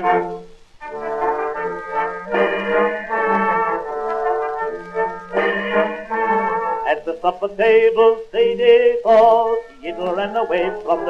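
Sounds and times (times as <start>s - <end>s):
small orchestra with brass: 0.0s - 7.0s.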